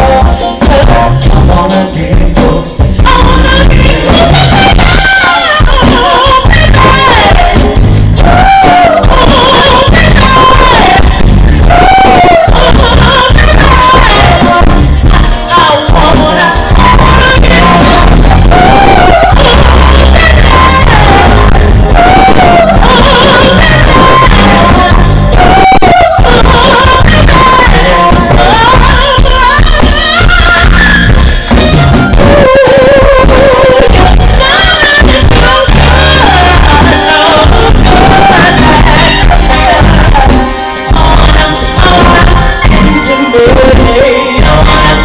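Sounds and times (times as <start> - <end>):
bass guitar: 0.0 - 45.0
drums: 0.0 - 45.0
keyboards: 0.0 - 45.0
live band playing loud: 0.0 - 45.0
woman singing: 0.0 - 45.0.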